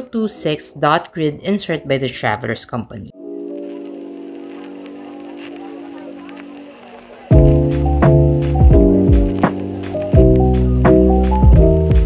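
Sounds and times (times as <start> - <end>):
paper pages turning: 3.4 - 7.4.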